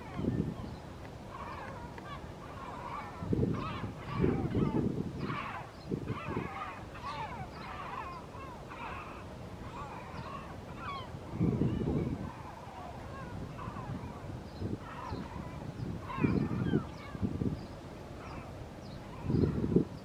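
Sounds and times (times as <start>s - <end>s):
gulls calling: 0.0s - 20.0s.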